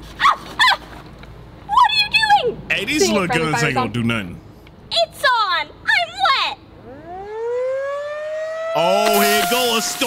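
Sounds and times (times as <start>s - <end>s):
siren winding up into wail: 6.8s - 10.0s.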